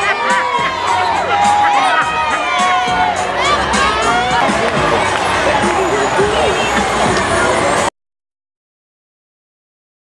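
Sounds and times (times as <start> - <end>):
crowd shouting and chattering: 0.0 - 7.9
large vehicle engines running: 3.2 - 7.9.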